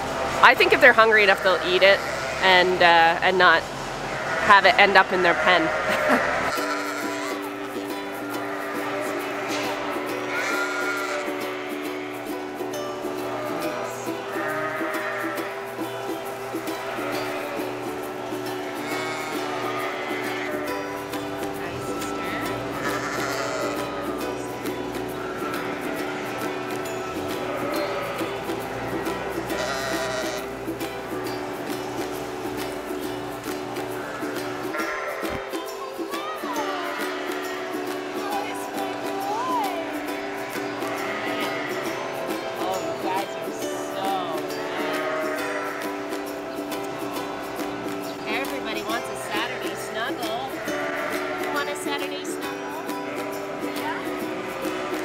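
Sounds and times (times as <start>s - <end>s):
background music with sustained notes: 0.0s - 55.0s
lambs bleating: 1.2s - 7.6s, 8.3s - 12.3s, 13.2s - 15.6s, 16.7s - 17.9s, 18.7s - 20.9s, 21.7s - 24.2s, 25.2s - 30.5s, 34.0s - 35.5s, 36.5s - 42.0s, 42.6s - 46.1s, 49.4s - 52.2s, 53.0s - 55.0s.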